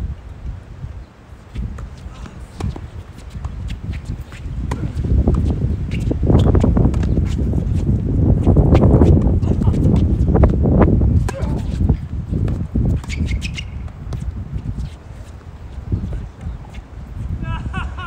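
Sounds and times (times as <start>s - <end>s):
shoe steps on court: 1.5s - 10.6s, 11.2s - 16.8s.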